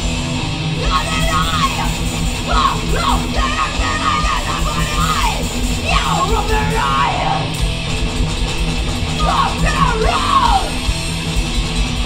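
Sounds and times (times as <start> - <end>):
distorted electric guitar: 0.0 - 12.0
fast pounding drums: 0.0 - 12.0
shouted vocals: 0.8 - 7.6, 9.2 - 10.9.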